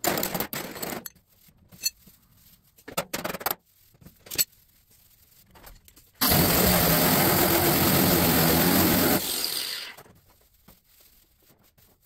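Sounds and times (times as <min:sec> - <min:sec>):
power sander on sheet metal: 0:06.2 - 0:10.0.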